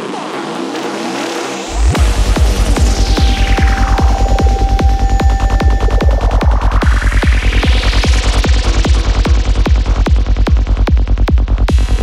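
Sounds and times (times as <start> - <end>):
sweeping synth effects: 1.4 - 8.6
heavy kick drum and bass: 1.6 - 12.0.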